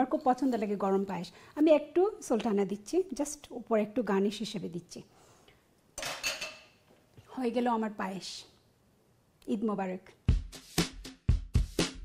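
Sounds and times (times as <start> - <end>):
china bowl clinking on hard surface: 6.0 - 6.8.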